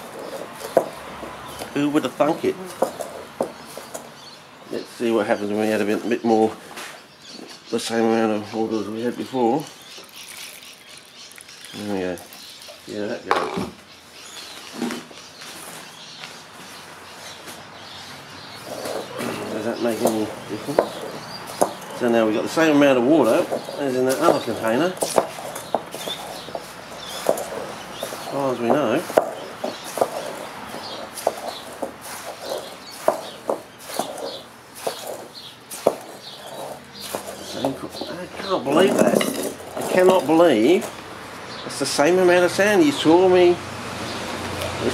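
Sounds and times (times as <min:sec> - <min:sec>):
birds chirping: 0:00.0 - 0:44.9
gritty sand rustle: 0:08.6 - 0:13.2, 0:14.2 - 0:41.1
grains clicking against glass: 0:09.8 - 0:12.8, 0:19.9 - 0:41.0
man talking: 0:19.1 - 0:20.9, 0:22.0 - 0:25.0, 0:28.3 - 0:29.2, 0:37.4 - 0:40.9.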